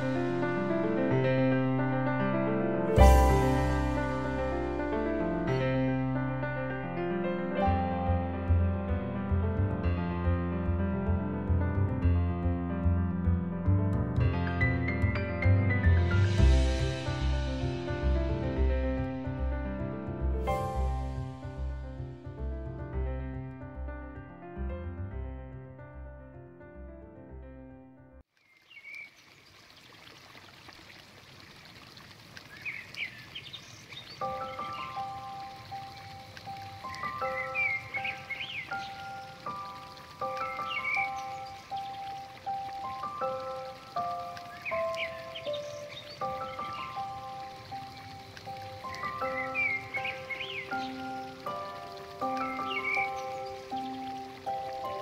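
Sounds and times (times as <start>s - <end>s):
rushing water: 0.0s - 6.8s, 14.5s - 22.9s, 28.3s - 55.0s
slow melody of long notes: 0.0s - 8.8s, 34.2s - 55.0s
small birds chirping: 28.4s - 29.9s, 32.4s - 55.0s.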